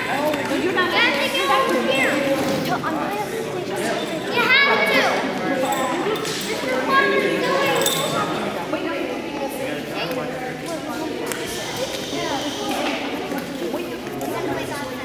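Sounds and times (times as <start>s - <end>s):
children's voices: 0.0s - 15.0s
spectators chattering: 0.0s - 15.0s.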